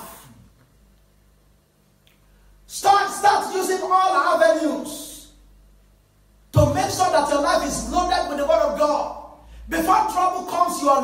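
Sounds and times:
low steady hum: 0.0s - 11.0s
man talking: 6.6s - 11.0s.

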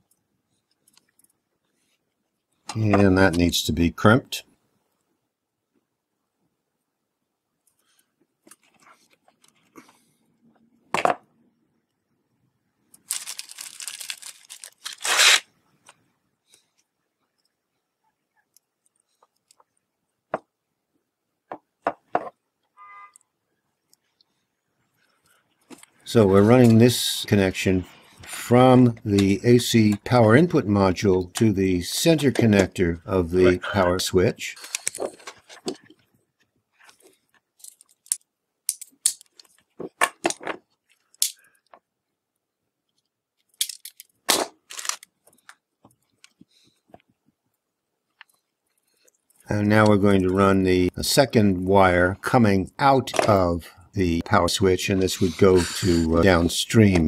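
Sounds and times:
clicks and rustles of wire and tools: 0.0s - 3.5s, 7.6s - 10.8s, 12.8s - 20.6s, 22.0s - 42.0s, 42.8s - 50.5s.

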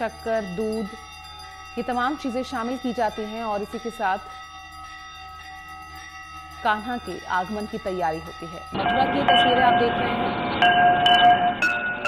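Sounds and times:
temple bells ringing: 0.0s - 12.0s.

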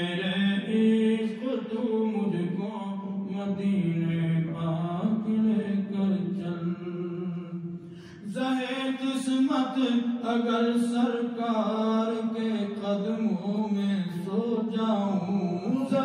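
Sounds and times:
man chanting: 0.0s - 16.0s.

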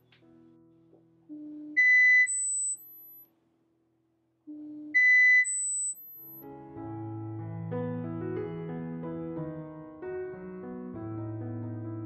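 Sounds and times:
electronic test beeps: 1.8s - 3.2s, 4.9s - 6.3s.

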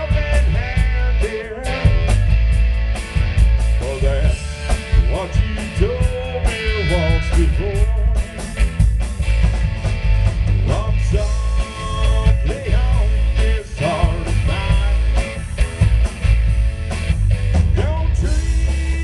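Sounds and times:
man singing: 0.0s - 2.3s, 3.8s - 8.8s, 10.5s - 15.4s, 17.6s - 19.0s
country rock band playing: 0.0s - 19.0s.

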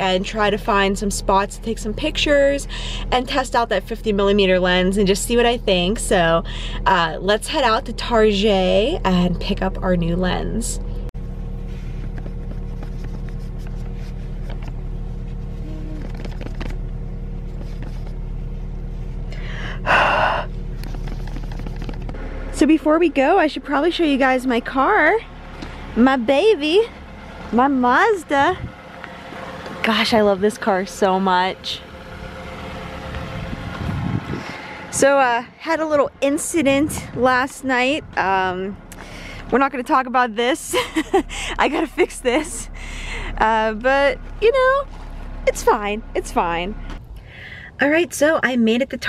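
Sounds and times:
steady low hum: 0.0s - 49.0s
rustling noise: 11.4s - 19.3s, 20.7s - 22.2s
wind rumbling on microphone: 28.3s - 28.8s, 33.0s - 38.9s.

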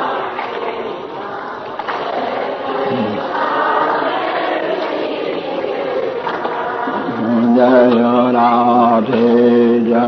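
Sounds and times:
group chanting devotional song: 0.0s - 10.0s.

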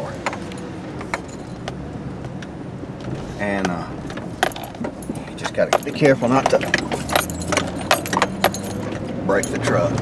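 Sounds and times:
objects rattling in truck cab: 0.0s - 1.8s, 3.0s - 10.0s
truck engine low hum: 0.0s - 10.0s.

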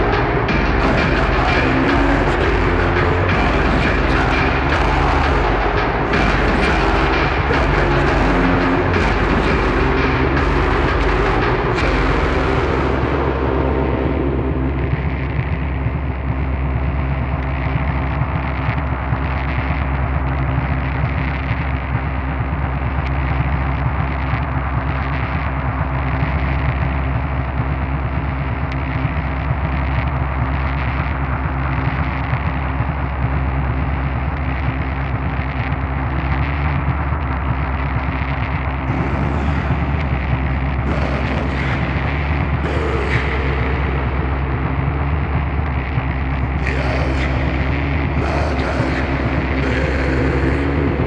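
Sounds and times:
harsh noise bursts: 0.0s - 21.4s, 37.7s - 51.0s
distorted noise drone: 0.0s - 51.0s.

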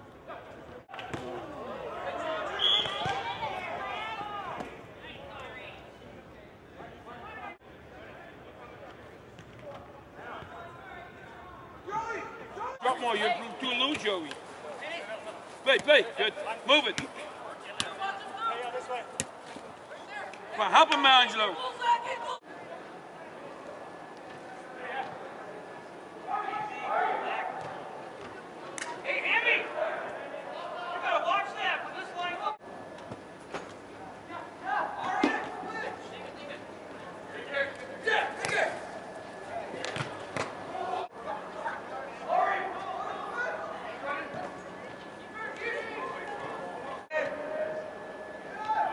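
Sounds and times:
faint shouting players: 0.3s - 5.9s, 26.2s - 32.6s, 37.4s - 48.9s.

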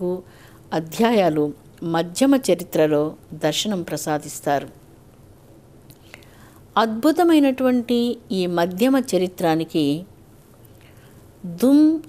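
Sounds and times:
woman speaking: 0.0s - 4.8s, 6.8s - 10.1s, 11.4s - 12.0s.

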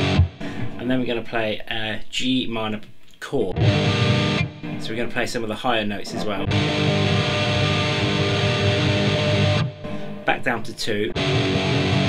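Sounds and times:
distorted electric guitar tremolo picking: 0.0s - 0.7s, 3.6s - 4.8s, 6.2s - 10.3s, 11.2s - 12.0s.

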